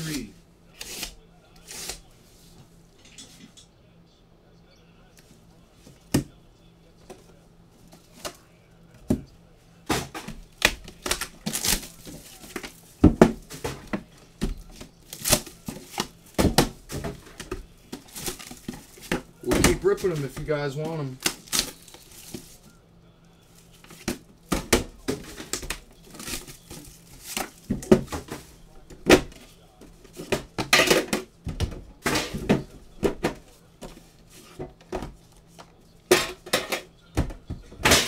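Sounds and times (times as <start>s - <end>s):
boxes knocking on table: 12.5s - 14.6s, 15.7s - 20.5s.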